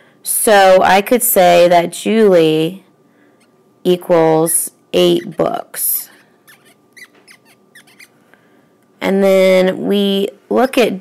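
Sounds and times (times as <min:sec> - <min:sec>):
stylus squeaking on tablet screen: 0:05.0 - 0:08.2.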